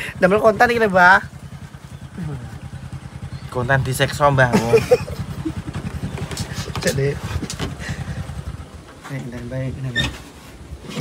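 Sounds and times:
small motorcycle engine running: 0:00.0 - 0:09.1.

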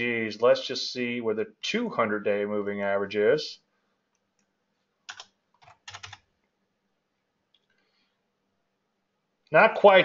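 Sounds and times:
computer keyboard keystrokes: 0:05.1 - 0:06.3.

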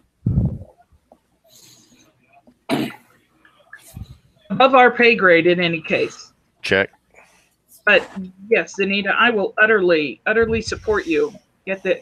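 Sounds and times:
person coughing: 0:02.7 - 0:03.0.

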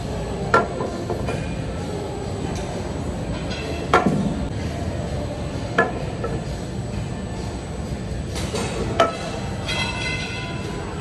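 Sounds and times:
gym background rumble: 0:00.0 - 0:11.0.

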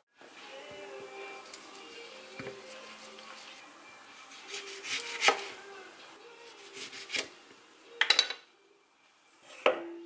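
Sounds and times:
knife slicing through a lime: 0:04.4 - 0:05.5.

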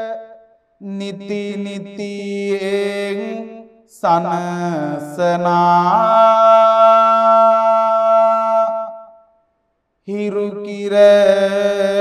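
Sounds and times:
monk chanting: 0:00.0 - 0:09.3, 0:10.1 - 0:12.0.

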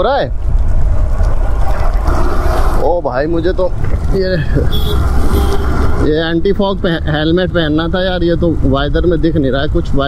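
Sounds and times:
motorcycle road noise on wet road: 0:00.0 - 0:10.0
wind rumble on microphone: 0:00.0 - 0:10.0.

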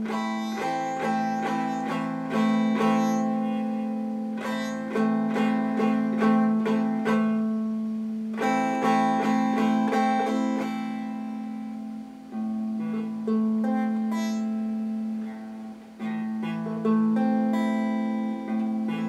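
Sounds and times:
electric guitar picked notes: 0:00.0 - 0:19.0
low guitar note: 0:00.0 - 0:19.0.

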